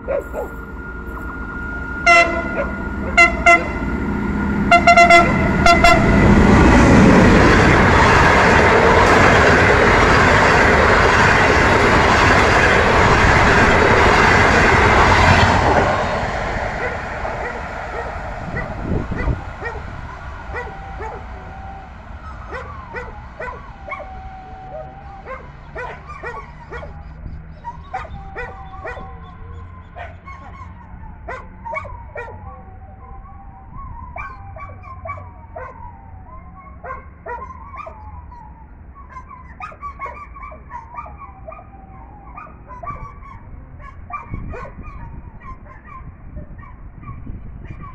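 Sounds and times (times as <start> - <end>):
dog barking and yipping: 0.0 - 0.6, 2.5 - 3.2, 16.8 - 21.4, 22.3 - 24.1, 24.8 - 32.6, 34.2 - 35.8, 36.7 - 38.2, 39.0 - 47.9
train wheels rolling on rails: 0.2 - 26.8.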